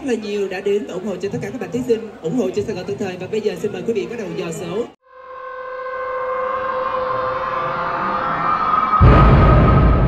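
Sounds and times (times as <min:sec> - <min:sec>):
synthesized drone of held tones: 0:05.1 - 0:09.3
heavy hit: 0:09.0 - 0:10.0.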